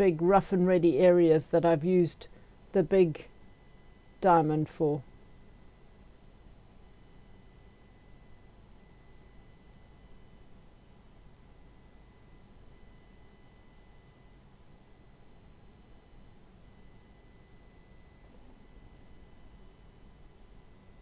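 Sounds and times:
faint high steady tones: 0.0 - 21.0.

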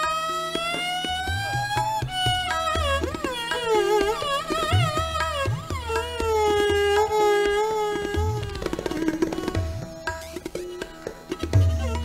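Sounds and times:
soft tabla strokes: 0.0 - 12.0.

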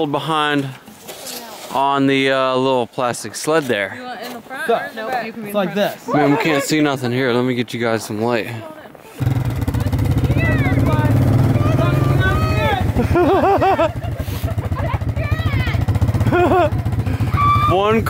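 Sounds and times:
people calling out: 9.1 - 18.0
atv engine running: 9.2 - 18.0.

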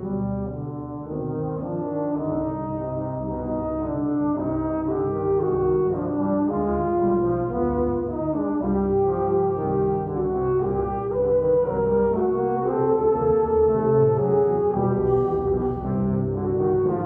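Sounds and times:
tuba and euphonium ensemble: 0.0 - 17.0.

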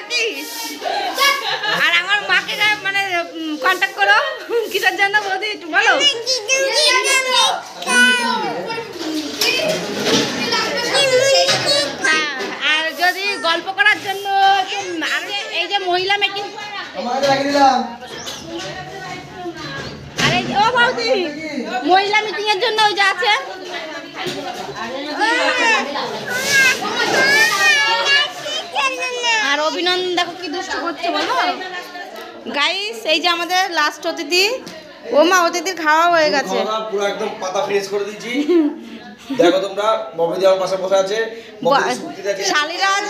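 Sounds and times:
children calling and chattering: 0.0 - 43.0
people talking high-pitched: 5.8 - 15.8.

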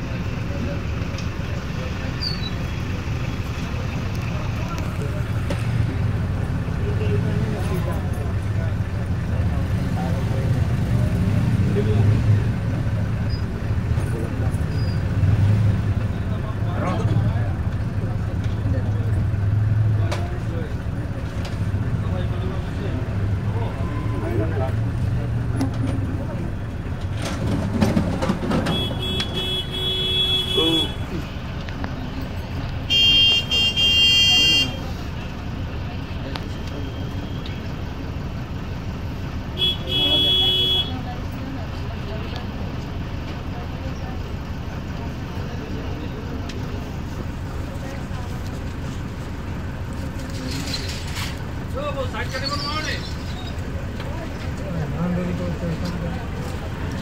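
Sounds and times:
road traffic: 0.0 - 57.0
vehicle engine idling: 0.0 - 57.0
car horn blasts: 28.7 - 31.0, 32.9 - 34.8, 39.6 - 41.0.

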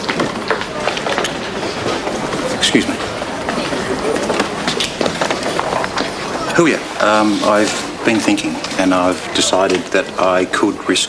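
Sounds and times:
bustle of people moving: 0.0 - 11.0
murmur of voices: 0.0 - 11.0.

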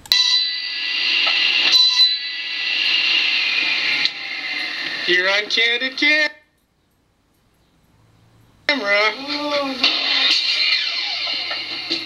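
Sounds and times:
high-pitched ringing whine: 0.1 - 12.0.

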